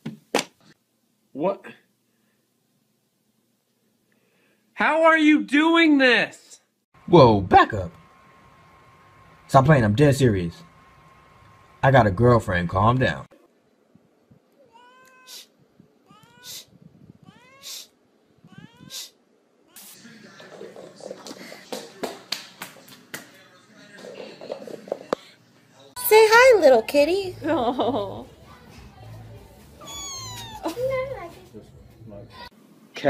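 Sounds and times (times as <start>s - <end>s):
cat meowing: 14.6s - 20.0s, 29.8s - 30.9s.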